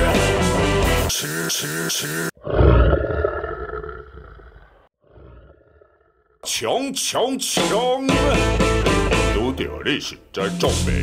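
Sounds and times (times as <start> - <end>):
rock band music: 0.0 - 1.1, 7.6 - 9.6.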